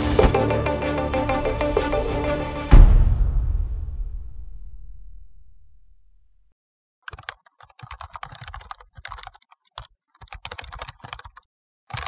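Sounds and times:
keyboard typing clicks: 7.1s - 12.0s.

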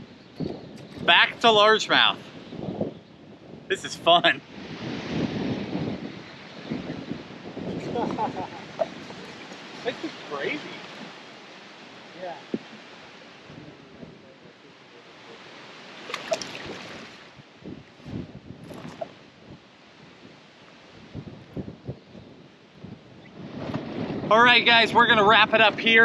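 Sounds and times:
wind: 0.0s - 26.0s
water lapping around boat: 8.5s - 13.5s, 15.0s - 17.4s
splashes and knocks: 16.0s - 17.2s.

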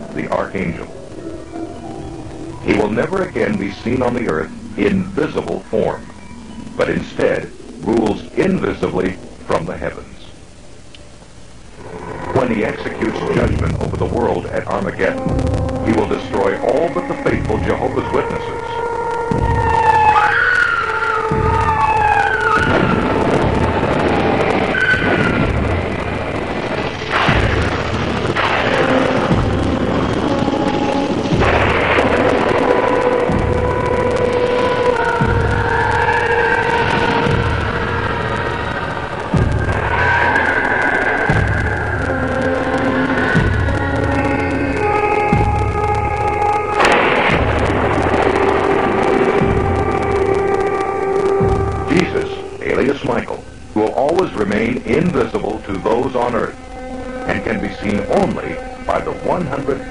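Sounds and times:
held drone with low rumble: 0.0s - 59.9s
rushing roar of flaming objects: 0.0s - 59.9s
person speaking: 2.6s - 6.0s, 12.3s - 18.8s, 51.9s - 56.6s, 57.3s - 59.9s.

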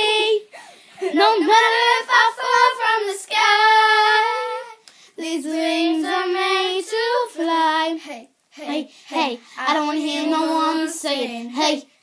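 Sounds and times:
girls singing unaccompanied: 0.0s - 12.0s.

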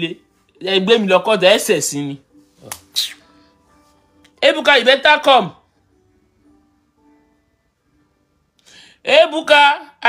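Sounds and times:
finger snaps: 2.6s - 3.2s.

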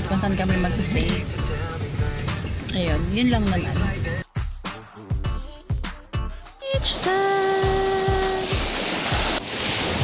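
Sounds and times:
waves washing onto beach: 6.8s - 10.0s.

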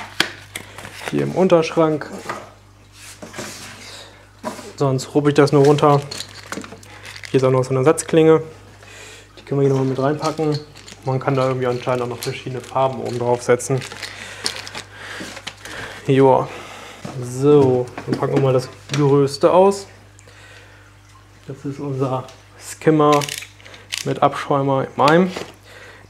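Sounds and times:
plastic bag rustling: 0.0s - 2.3s, 3.0s - 8.2s, 9.4s - 16.2s.

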